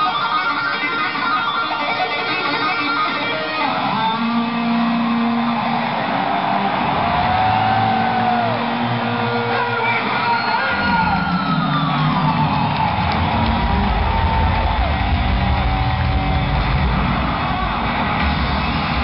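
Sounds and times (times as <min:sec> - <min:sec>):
electric guitar solo: 0:00.0 - 0:18.9
crowd noise: 0:00.0 - 0:19.0.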